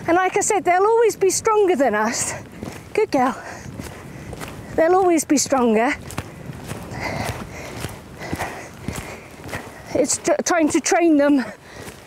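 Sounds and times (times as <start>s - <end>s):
hooves striking sand: 0.0s - 12.0s.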